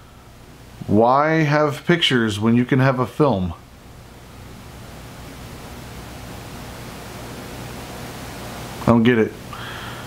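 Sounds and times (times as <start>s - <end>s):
faint low hum: 0.0s - 10.0s
steady hiss: 0.0s - 10.0s
man's voice: 0.9s - 3.6s.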